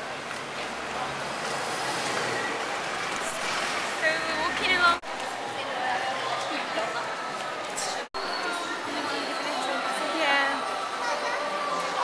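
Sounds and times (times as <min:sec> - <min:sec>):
buses and cars passing: 0:00.0 - 0:12.0.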